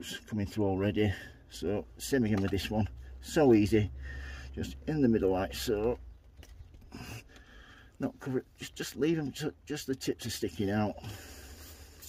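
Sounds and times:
soft rustles in potting compost: 0:00.0 - 0:12.0.

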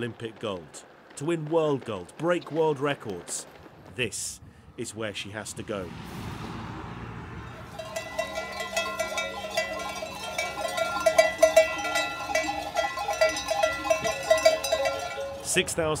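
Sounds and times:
soft rushing noise: 0:04.0 - 0:09.4
sheep bells clanking: 0:07.5 - 0:16.0.

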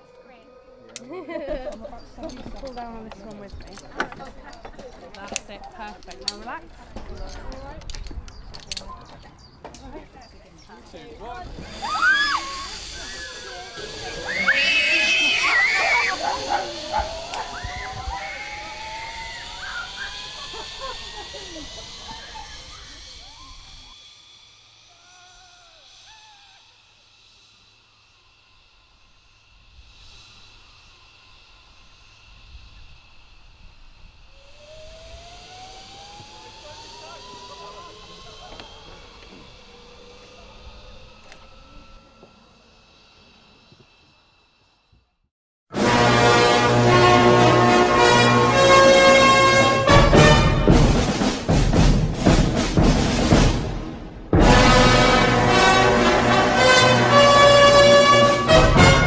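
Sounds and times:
zip wire pulley whine: 0:11.2 - 0:45.2
people shrieking: 0:11.4 - 0:24.0, 0:24.8 - 0:27.0.

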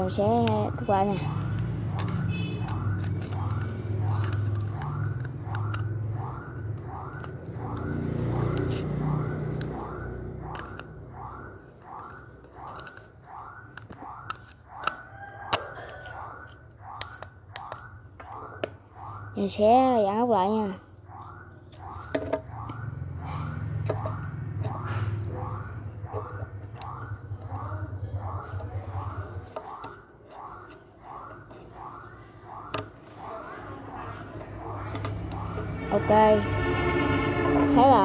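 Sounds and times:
plastic parts clicking and knocking: 0:00.0 - 0:19.3, 0:21.2 - 0:22.8, 0:23.7 - 0:35.8.

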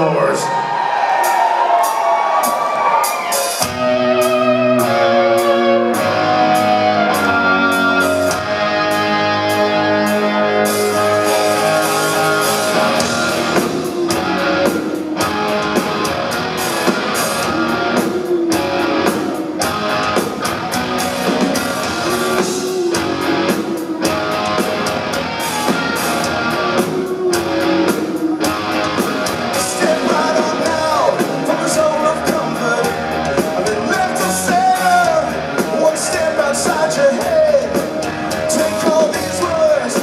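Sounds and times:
rock band playing: 0:00.0 - 0:40.0.

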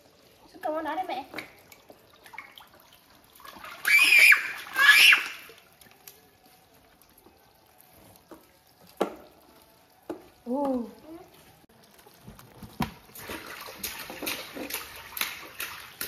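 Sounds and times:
water sloshing in a tub: 0:00.0 - 0:16.0.

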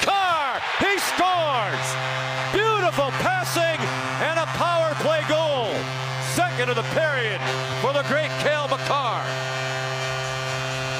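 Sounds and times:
electrical hum: 0:00.8 - 0:10.9
man speaking: 0:02.6 - 0:09.3.

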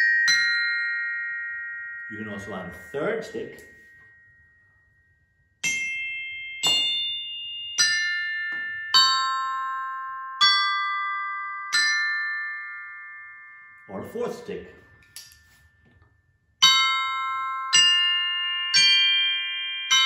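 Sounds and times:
glockenspiel chords: 0:00.0 - 0:20.0.

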